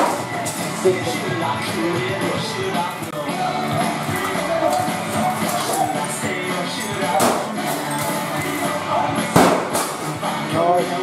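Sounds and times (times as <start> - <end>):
rock music with singing: 0.0 - 11.0
loud crash of something smashed: 9.3 - 10.2.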